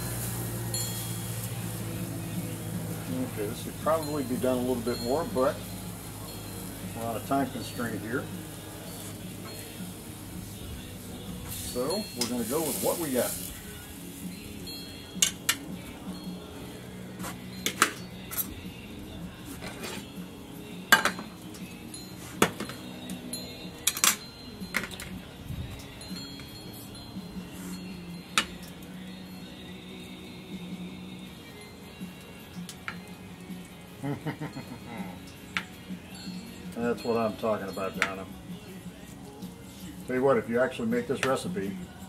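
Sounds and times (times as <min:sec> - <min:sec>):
utensils and plates clinking: 0:17.2 - 0:18.6, 0:20.9 - 0:21.4, 0:23.8 - 0:26.7.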